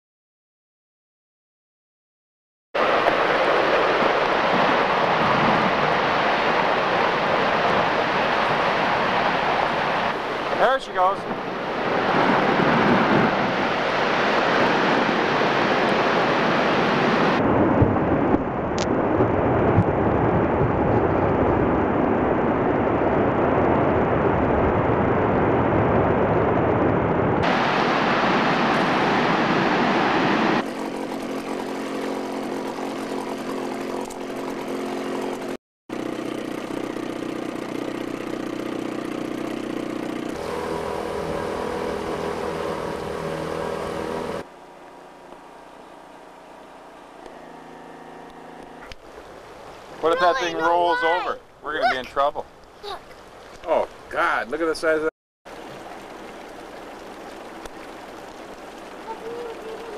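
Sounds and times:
boat engine drone: 2.8s - 52.1s, 55.5s - 59.9s
rumble of ice collapsing into water: 17.4s - 27.1s.

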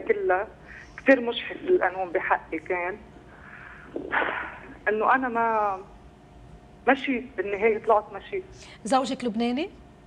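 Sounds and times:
woman speaking on telephone: 0.0s - 3.0s.

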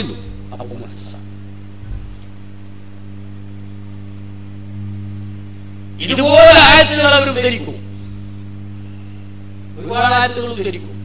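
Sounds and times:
low electrical hum and drone: 0.0s - 11.0s.

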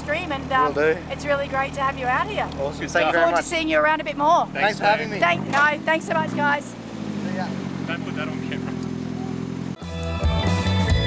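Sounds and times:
car engine idling: 0.0s - 9.8s
rock music with electric guitar: 9.8s - 11.0s.

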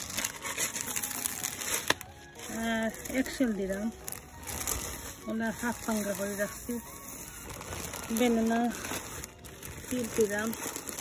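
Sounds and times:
plastic bag crinkling: 0.0s - 11.0s
woman speaking: 2.5s - 4.0s, 5.2s - 6.9s, 8.1s - 8.8s, 9.9s - 10.6s.

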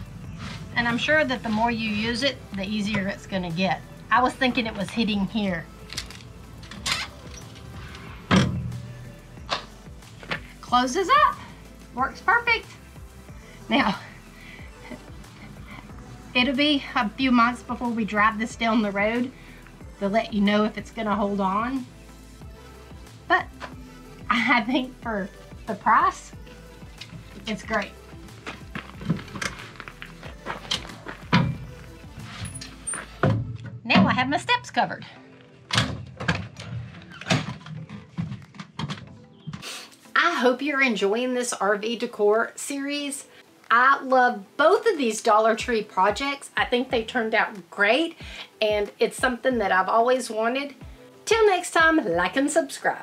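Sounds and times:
background music: 0.0s - 53.0s.

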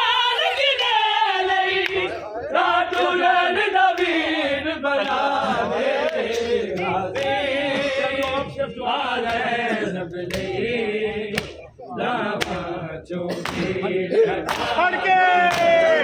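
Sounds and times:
men chanting a lament: 0.0s - 16.0s
hands slapping bare chests: 10.3s - 10.6s, 11.3s - 11.6s, 12.4s - 12.7s, 13.4s - 13.8s, 14.4s - 14.8s, 15.5s - 15.8s.

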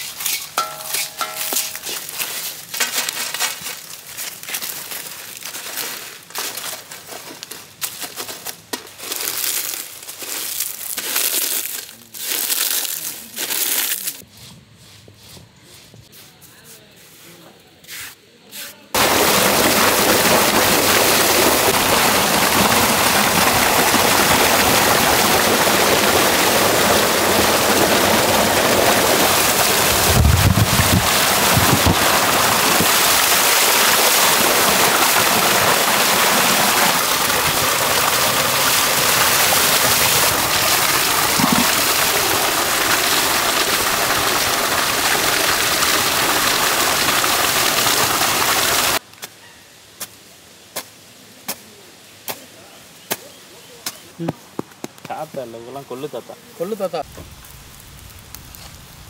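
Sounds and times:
hoe chopping soil: 29.5s - 43.5s.

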